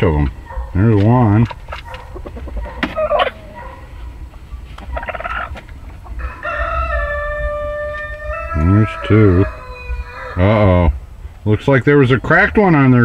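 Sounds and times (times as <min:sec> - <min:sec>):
chickens calling: 0:00.0 - 0:13.0
rooster crowing: 0:06.2 - 0:10.6.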